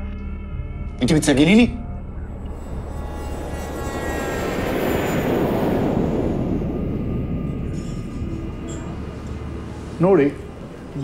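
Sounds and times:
low hum: 0.0 - 11.0
rushing noise: 2.1 - 11.0.

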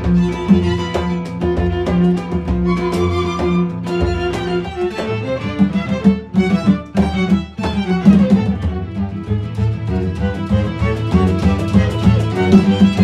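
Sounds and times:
hand-drum percussion: 0.0 - 13.0
nylon-string guitar: 0.0 - 13.0
string quartet: 0.0 - 13.0.

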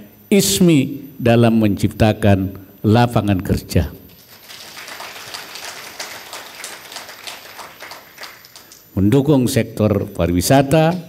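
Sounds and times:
audience applauding: 4.2 - 8.9.

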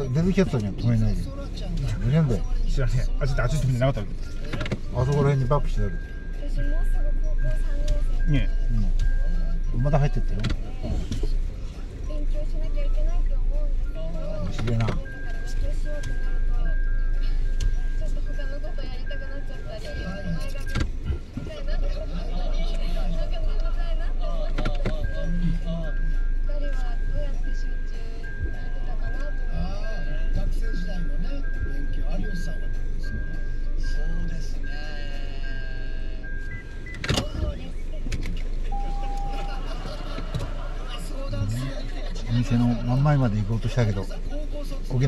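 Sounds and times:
low steady rumble: 0.0 - 45.0
brief steady tone: 38.7 - 40.3.

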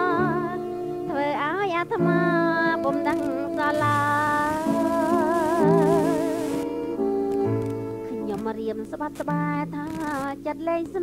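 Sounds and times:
instrumental accompaniment: 0.0 - 11.0.

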